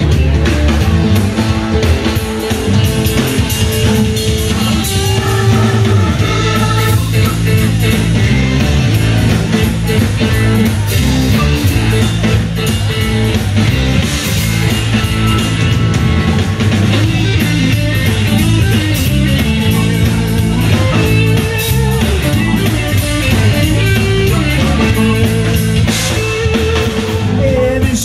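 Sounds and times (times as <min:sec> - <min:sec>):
bass guitar: 0:00.0 - 0:28.0
drum kit: 0:00.0 - 0:28.0
electric guitar: 0:00.0 - 0:28.0.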